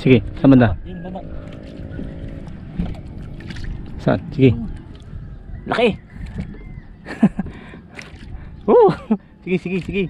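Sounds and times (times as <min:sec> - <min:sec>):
boat engine humming: 0:00.0 - 0:10.0.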